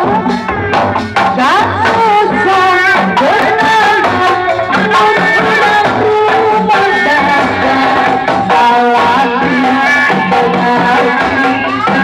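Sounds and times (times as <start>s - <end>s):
hand drums beating: 0.0s - 12.0s.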